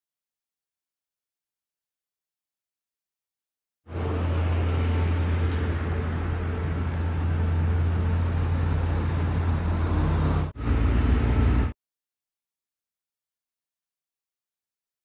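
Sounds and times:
city street traffic rumble: 3.9s - 11.8s.

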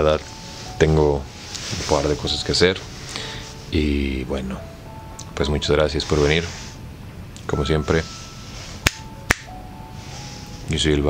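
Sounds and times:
faint background music: 0.0s - 11.0s
finger snaps: 8.8s - 9.5s.

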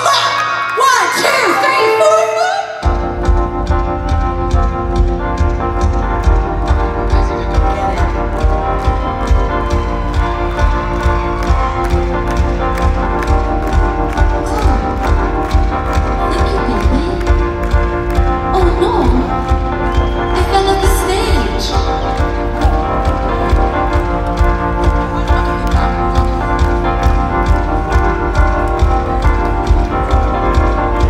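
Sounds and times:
live rock band playing: 0.6s - 31.0s.

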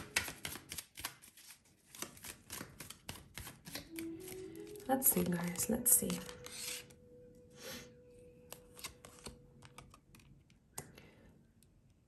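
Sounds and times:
cards clicking and tapping on table: 0.0s - 1.2s
cards sliding rustle: 0.0s - 4.8s, 6.0s - 7.0s, 8.5s - 10.3s.

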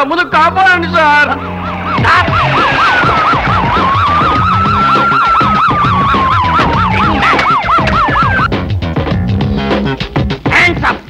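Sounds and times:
background music: 0.0s - 11.0s
police siren yelp and wail: 0.5s - 8.5s.

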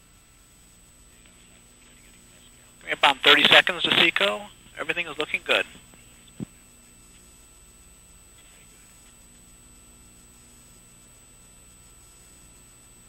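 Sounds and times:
hiss and electrical hum: 0.0s - 13.0s.

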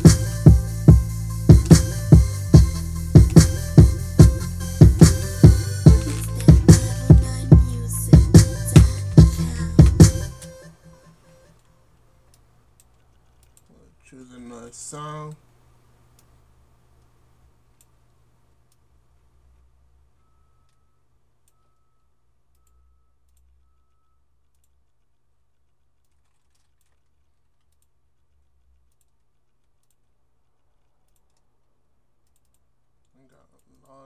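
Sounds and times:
computer mouse clicks: 12.2s - 13.7s, 24.4s - 31.6s, 32.2s - 34.0s
short faint beeps: 20.2s - 24.3s.

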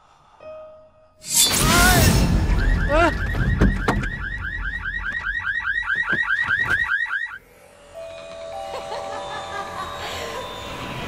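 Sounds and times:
car alarm siren warbling: 2.3s - 7.4s.

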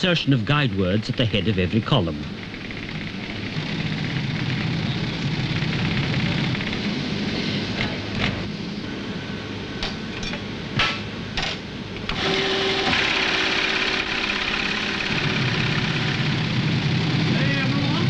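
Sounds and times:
machine humming: 0.0s - 18.0s.

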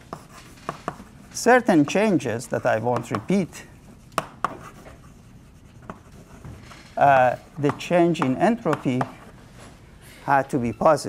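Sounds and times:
chalk tapping on blackboard: 0.0s - 2.0s, 2.6s - 6.5s, 7.6s - 9.2s
chalk scratching on blackboard: 0.0s - 6.6s.

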